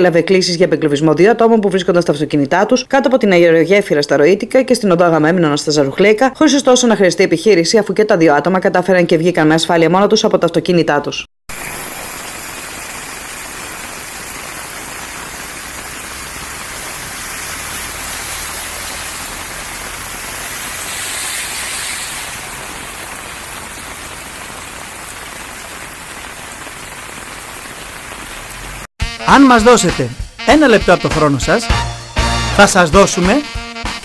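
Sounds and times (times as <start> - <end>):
car splashing through water: 11.5 - 28.9
torrential rain pouring: 11.5 - 28.9.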